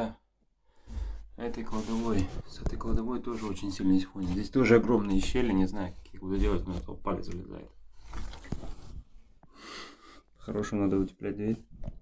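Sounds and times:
person breathing: 0.6s - 1.4s, 8.7s - 10.4s.

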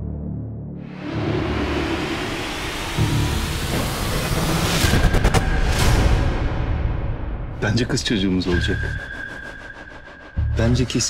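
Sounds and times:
rushing noise swell: 0.9s - 5.5s.

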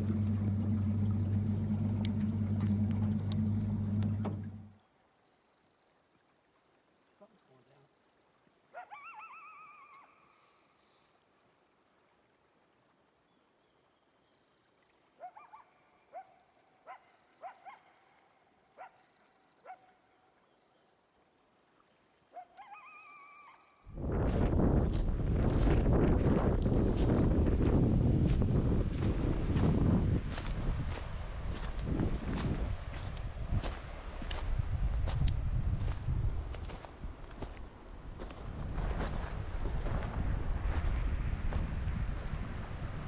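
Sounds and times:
faint animal call: 8.7s - 10.6s, 22.3s - 23.8s
coyote howling: 8.8s - 10.2s, 22.4s - 23.8s
wind buffeting microphone: 23.9s - 43.0s.

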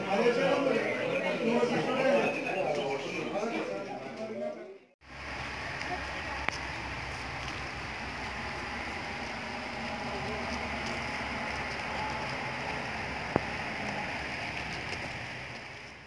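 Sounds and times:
rushing outdoor background noise: 5.0s - 16.0s.

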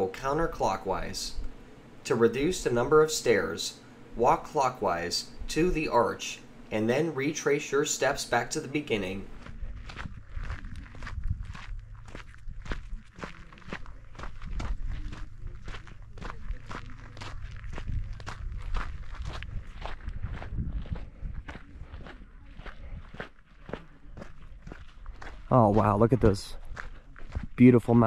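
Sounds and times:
footsteps on gritty dirt trail: 9.0s - 27.7s.

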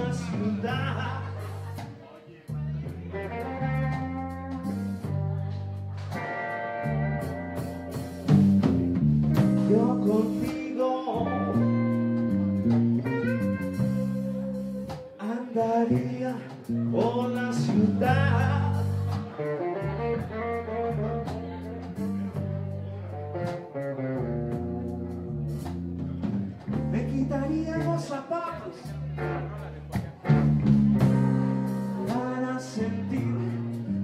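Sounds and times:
drums: 0.0s - 34.0s
electric bass: 0.0s - 34.0s
electric guitar: 0.0s - 34.0s
lead melody: 2.6s - 34.0s.

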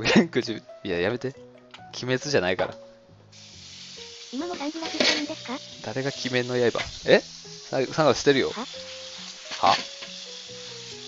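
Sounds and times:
food sizzling in a pan: 3.3s - 11.0s.

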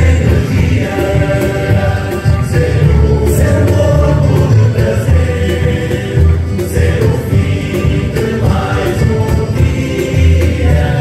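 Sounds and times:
group singing with instruments: 0.0s - 11.0s.

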